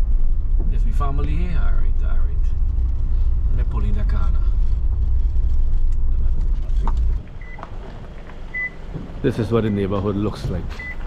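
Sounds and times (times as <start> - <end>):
car engine rumble: 0.0 - 11.0.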